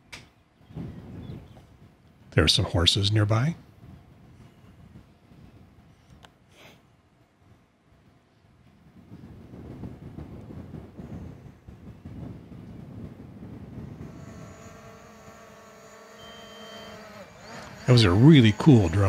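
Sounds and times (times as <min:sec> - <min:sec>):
drone motors whining: 0:13.8 - 0:19.0.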